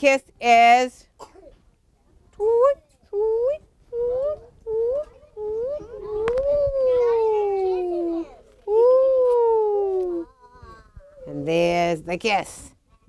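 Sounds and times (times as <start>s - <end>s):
person imitating owl hoots: 2.4s - 11.3s.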